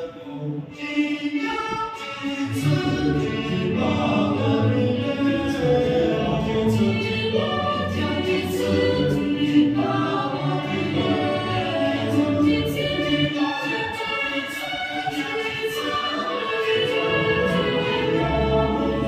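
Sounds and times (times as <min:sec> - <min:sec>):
choir singing long notes: 0:00.0 - 0:19.0.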